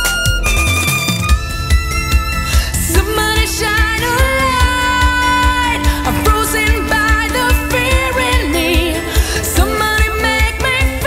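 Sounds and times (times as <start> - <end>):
bass and drums backing track: 0.0 - 11.0
violin playing held notes: 0.0 - 11.0.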